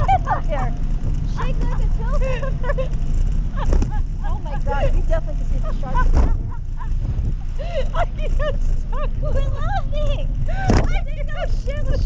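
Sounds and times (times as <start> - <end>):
low rumble: 0.0 - 12.0
women laughing and exclaiming: 0.0 - 12.0.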